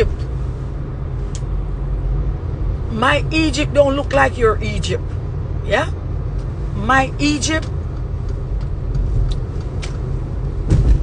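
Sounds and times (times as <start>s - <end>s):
car interior road and engine drone: 0.0s - 11.0s.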